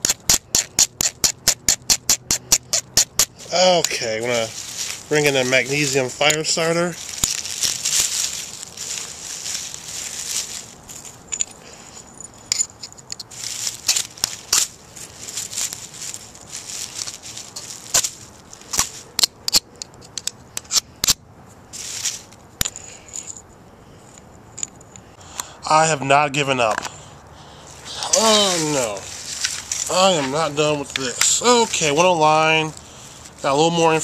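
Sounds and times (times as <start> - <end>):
dry leaves rustling: 2.6 - 19.2, 21.6 - 23.1, 27.5 - 34.0.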